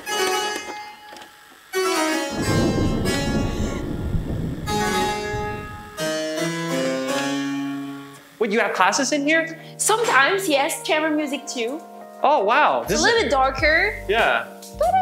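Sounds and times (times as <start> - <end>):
harpsichord playing: 1.8 - 4.0, 4.7 - 8.4.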